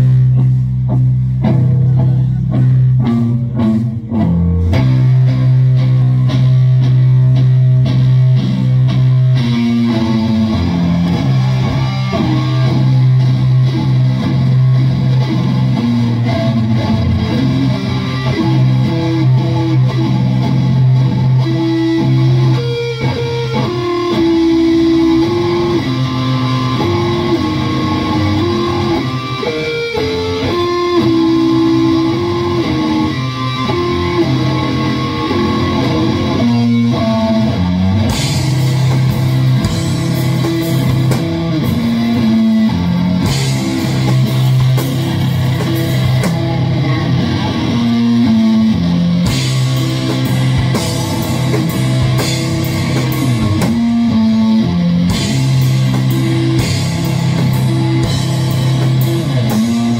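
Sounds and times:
electric guitar riff: 0.0s - 59.9s
slow doom metal band: 0.0s - 59.9s.

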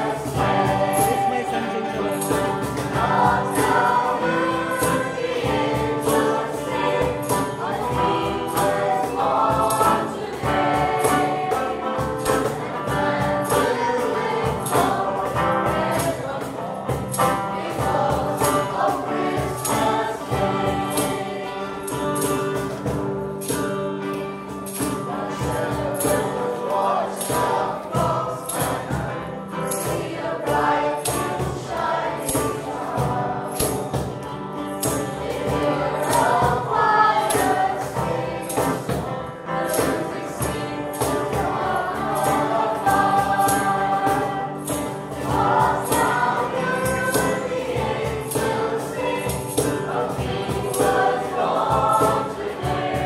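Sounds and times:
group singing a carol: 0.0s - 53.0s
light percussion beat: 0.0s - 53.0s.

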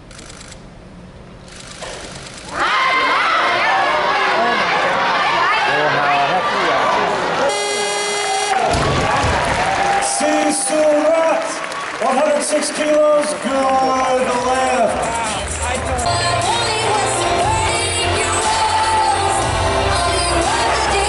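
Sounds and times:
crowd shouting and cheering: 2.5s - 21.0s
buzzer: 7.5s - 8.7s
music playing: 14.0s - 21.0s.

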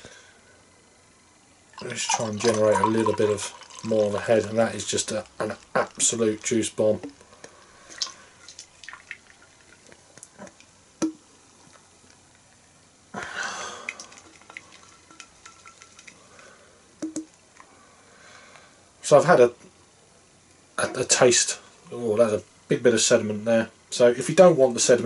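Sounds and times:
beer pouring into a glass: 1.8s - 7.1s, 8.0s - 10.0s, 13.7s - 16.4s
beer foam fizzing: 1.8s - 10.4s, 13.4s - 16.5s.

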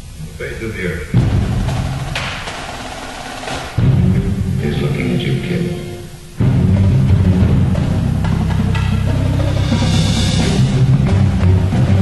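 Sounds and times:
loud low drum hits: 1.2s - 4.6s
percussion ensemble playing: 1.2s - 12.0s.

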